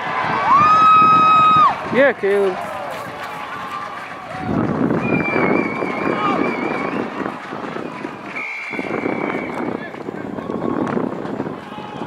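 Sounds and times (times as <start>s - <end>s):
players and spectators shouting: 0.0s - 12.0s
referee's whistle blast: 8.4s - 9.8s.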